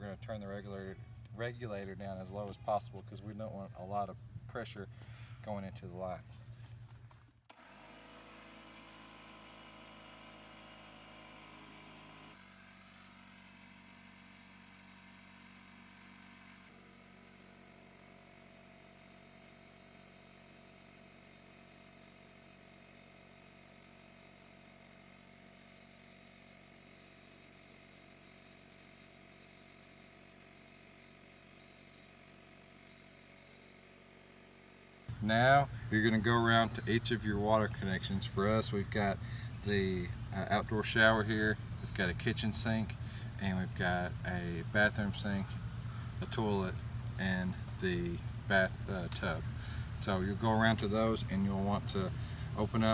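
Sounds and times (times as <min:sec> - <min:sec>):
air compressor humming: 0:00.0 - 0:05.5, 0:06.1 - 0:52.9.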